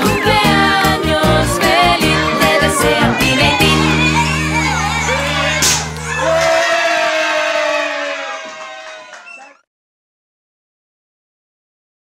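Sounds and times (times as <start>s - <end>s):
birthday song music: 0.0s - 7.2s
children cheering and shouting: 0.0s - 9.7s.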